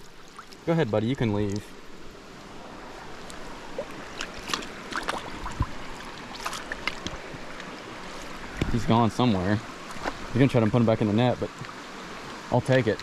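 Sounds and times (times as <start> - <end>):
creek water running over rocks: 0.0 - 13.0
net splashing in water: 4.1 - 7.0.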